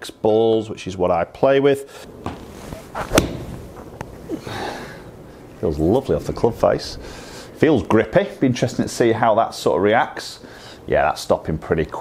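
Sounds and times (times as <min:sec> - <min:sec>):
golf club striking ball: 0:03.0 - 0:03.8.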